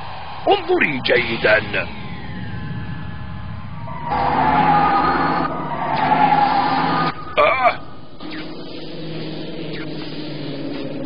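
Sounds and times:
rumbling noise: 0.0 - 5.8
falling tone: 0.0 - 8.7
siren-like tone: 0.0 - 11.0.

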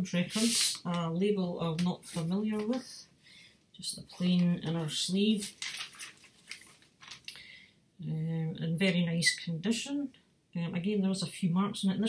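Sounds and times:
paper sleeve rustling and scraping: 0.2 - 0.9, 4.2 - 7.2.

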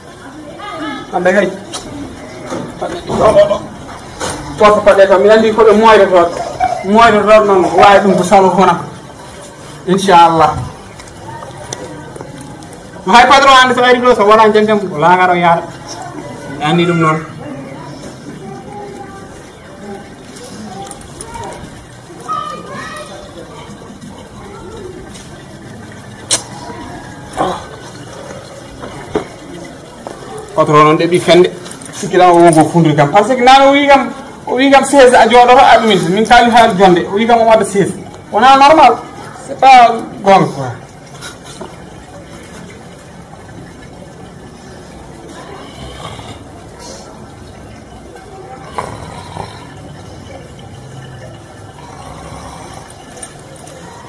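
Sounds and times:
faint voices: 0.0 - 54.0
steady background noise: 0.0 - 54.0.

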